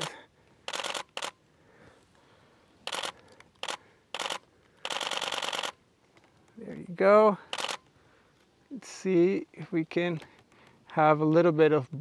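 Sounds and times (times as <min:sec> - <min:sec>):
camera shutter clicking in bursts: 0:00.0 - 0:01.4, 0:02.8 - 0:05.8, 0:07.5 - 0:07.9.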